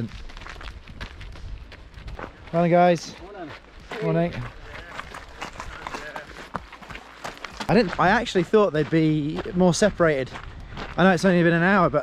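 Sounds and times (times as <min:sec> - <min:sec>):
footsteps running on gravel: 0:00.0 - 0:12.0.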